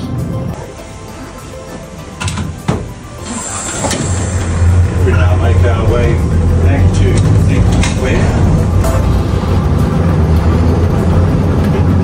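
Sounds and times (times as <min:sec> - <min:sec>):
tram motors humming: 0:00.0 - 0:12.0
short hiss: 0:03.2 - 0:04.7
tram controller clicking: 0:03.2 - 0:09.1.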